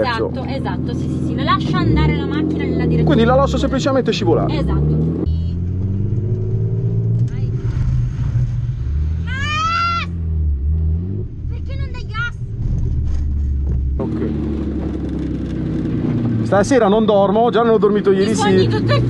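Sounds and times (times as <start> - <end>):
car engine at low revs: 0.0 - 19.0.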